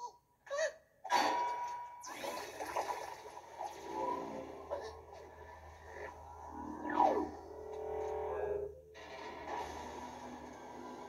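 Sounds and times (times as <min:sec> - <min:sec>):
trailer music through tv speakers: 0:01.1 - 0:11.0
falling whistle-like glide: 0:06.3 - 0:08.6.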